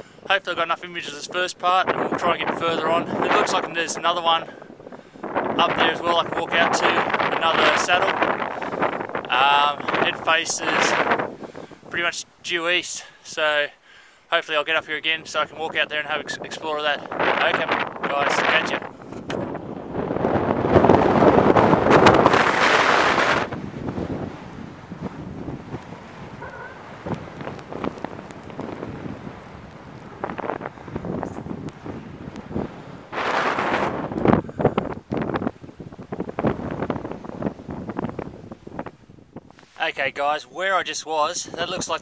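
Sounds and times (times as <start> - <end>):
wind buffeting microphone: 0.0 - 12.9, 14.5 - 42.0.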